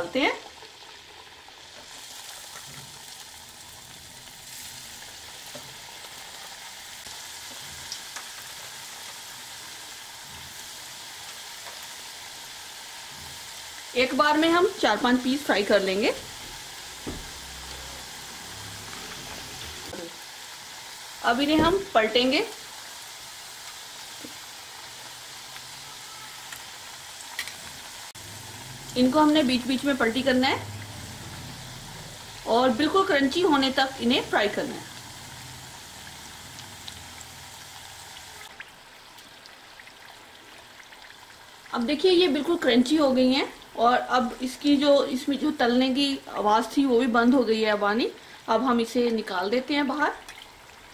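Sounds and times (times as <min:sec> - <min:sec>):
food sizzling in hot oil: 0:00.0 - 0:50.9
soft knock: 0:17.0 - 0:17.4.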